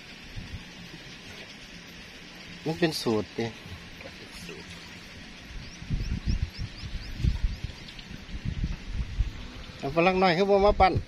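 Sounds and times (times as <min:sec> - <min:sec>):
wind on microphone: 0:00.3 - 0:00.8, 0:05.5 - 0:11.0.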